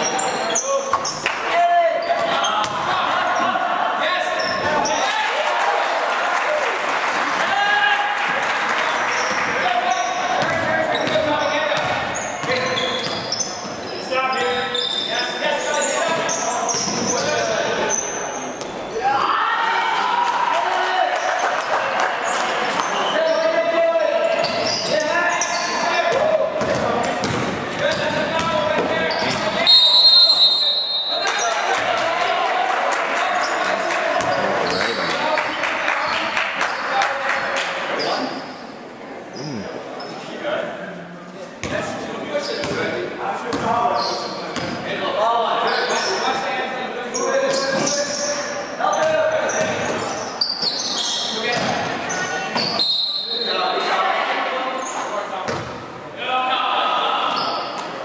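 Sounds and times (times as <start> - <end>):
echoing voices: 0.0 - 58.0
basketball bouncing on hardwood floor: 26.6 - 29.4
loud high whistle blast: 29.6 - 31.2.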